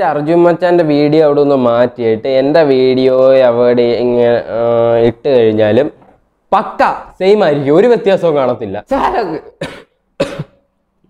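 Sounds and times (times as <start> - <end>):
person coughing: 9.5 - 10.7.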